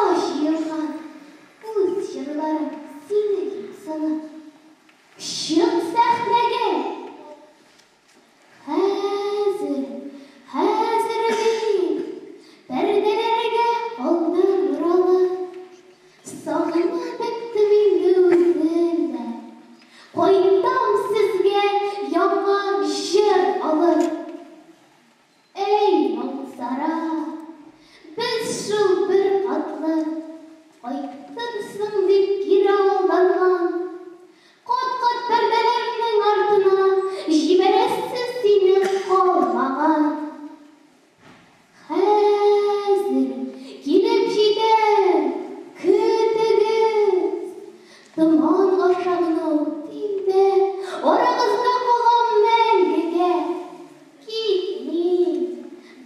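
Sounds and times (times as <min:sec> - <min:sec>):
girl singing: 0:00.0 - 0:04.6, 0:05.2 - 0:07.4, 0:08.6 - 0:24.6, 0:25.6 - 0:40.7, 0:41.8 - 0:56.0.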